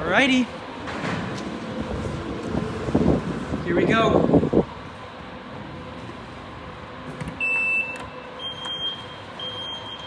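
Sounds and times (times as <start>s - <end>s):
wind on phone microphone: 1.7s - 4.8s.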